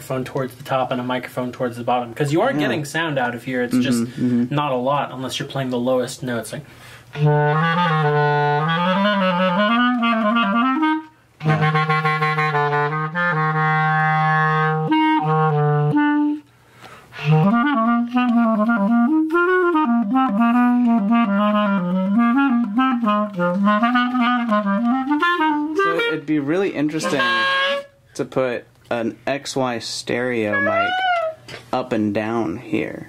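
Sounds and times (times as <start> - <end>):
clarinet low notes: 7.1 - 16.5, 17.1 - 28.0, 30.5 - 31.5.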